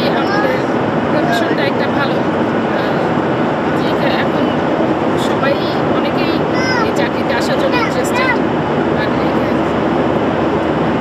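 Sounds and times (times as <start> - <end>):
airliner cabin noise: 0.0 - 11.0.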